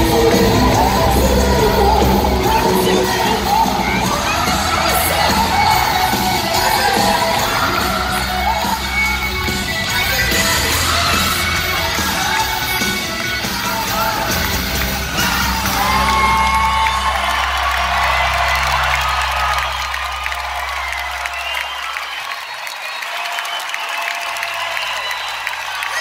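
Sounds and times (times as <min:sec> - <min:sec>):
crowd cheering and whooping: 0:00.0 - 0:26.0.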